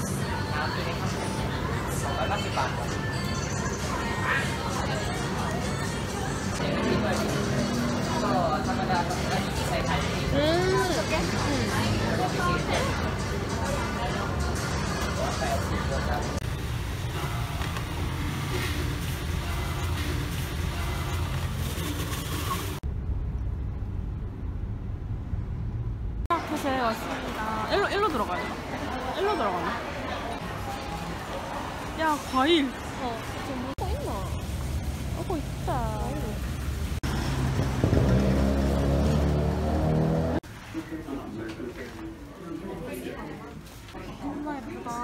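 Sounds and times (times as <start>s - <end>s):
busy street noise: 0.0s - 45.0s
car engine and road rumble: 16.2s - 26.3s, 32.9s - 40.5s
vehicle engine accelerating: 34.6s - 40.5s.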